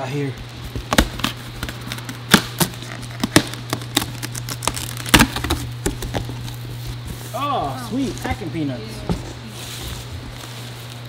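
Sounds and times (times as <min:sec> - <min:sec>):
cardboard flaps crackling: 0:00.0 - 0:11.0
low hum of fans: 0:00.0 - 0:11.0
packing tape peeled off box: 0:00.5 - 0:08.5.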